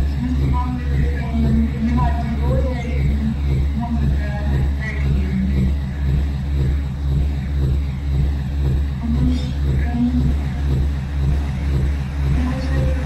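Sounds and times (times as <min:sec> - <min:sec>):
music with pulsing bass: 0:00.0 - 0:13.0.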